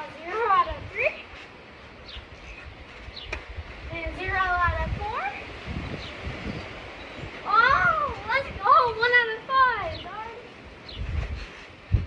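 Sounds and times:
high-pitched voice calling out: 0:07.5 - 0:10.5.

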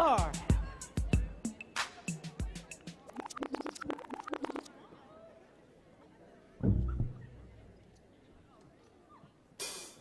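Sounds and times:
dj scratching a record: 0:02.6 - 0:04.7.

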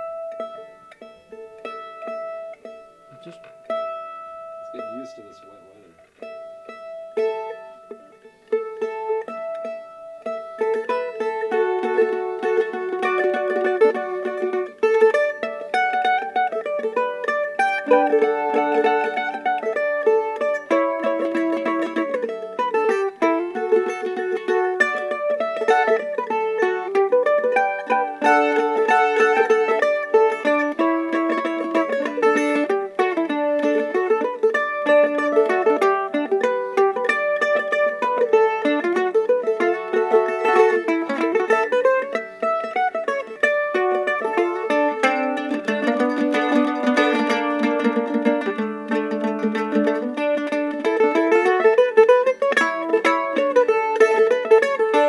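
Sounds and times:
mandolin picking notes and chords: 0:00.0 - 0:55.0.

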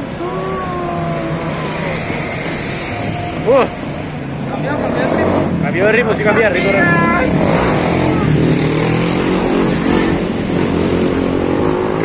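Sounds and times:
street traffic: 0:00.0 - 0:12.0
motorcycle engine drone: 0:06.3 - 0:12.0.

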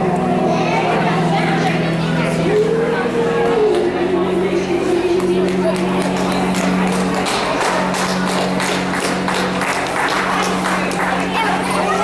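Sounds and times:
woman singing through microphone: 0:02.3 - 0:06.0.

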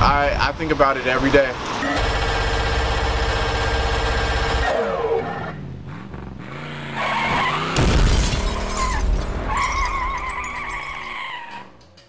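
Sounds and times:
engine-like drone: 0:01.8 - 0:07.8
loud shattering crash: 0:07.8 - 0:11.1.

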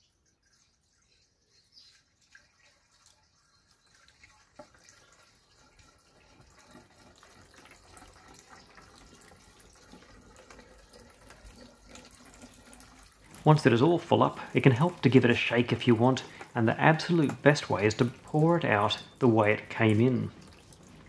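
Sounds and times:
liquid pouring: 0:00.0 - 0:21.0.

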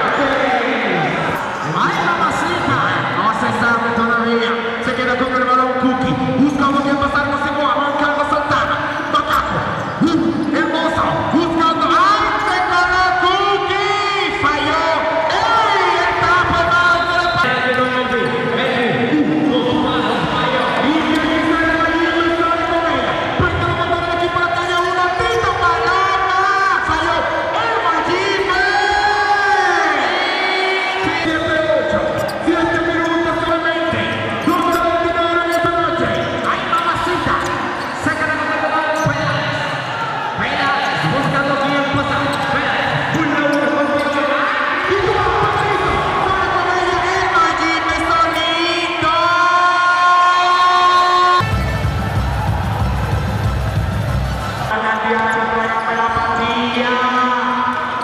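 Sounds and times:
loud voices in hall: 0:00.0 - 0:58.0.

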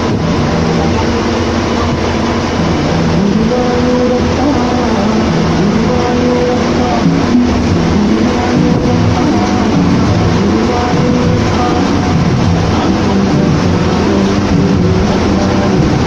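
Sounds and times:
bus engine and road noise: 0:00.0 - 0:16.0
melody of held notes: 0:00.0 - 0:16.0.

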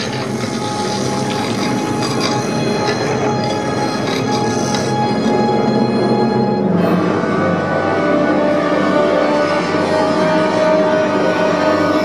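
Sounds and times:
dark orchestral music: 0:00.0 - 0:12.0
dissonant sustained tones over speakers: 0:00.0 - 0:12.0.

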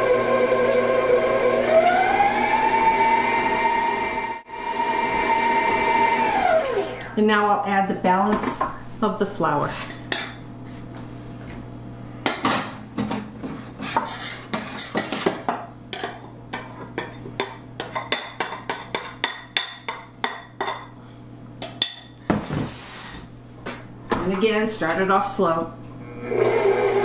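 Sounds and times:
spoon scraping glass bowl: 0:13.8 - 0:15.0.

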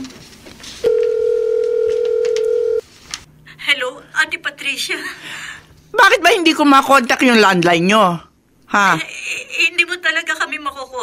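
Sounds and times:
telephone ringing tone: 0:00.8 - 0:02.8.

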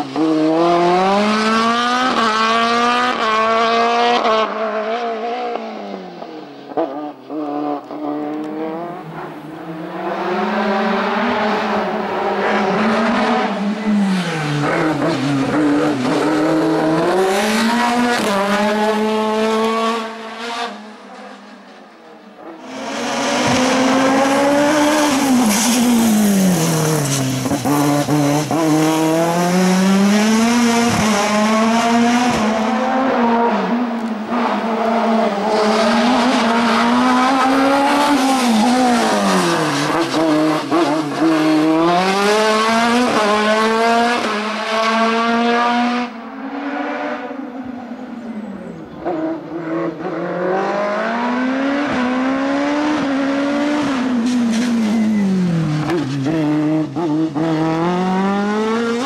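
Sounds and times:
racing car engine revving: 0:00.0 - 0:06.0, 0:06.8 - 0:20.9, 0:22.5 - 0:47.4, 0:49.0 - 0:59.0
tyre squeal: 0:54.3 - 0:56.2.

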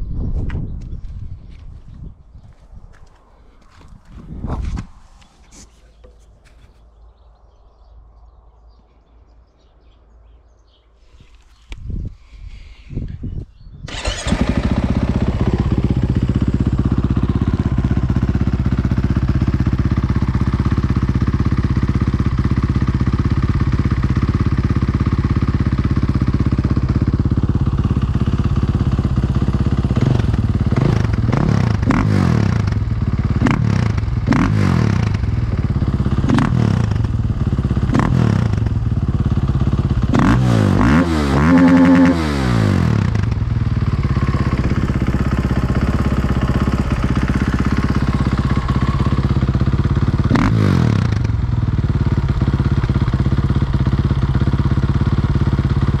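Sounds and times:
motorcycle engine idling and revving: 0:13.9 - 0:56.0.

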